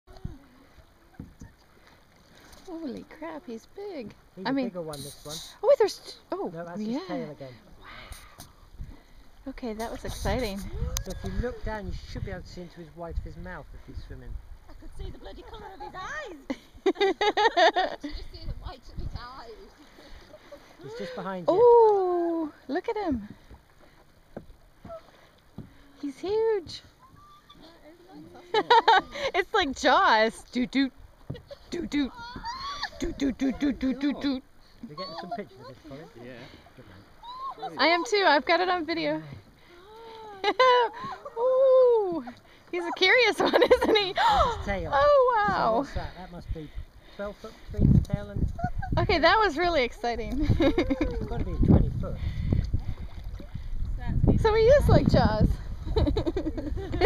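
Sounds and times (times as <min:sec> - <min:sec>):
water lapping against kayak hull: 0:00.1 - 0:57.0
soft knocks on hull: 0:24.3 - 0:25.8.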